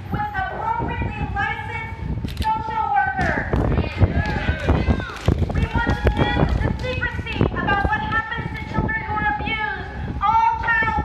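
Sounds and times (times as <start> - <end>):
crowd voices overlapping: 0.0 - 11.0.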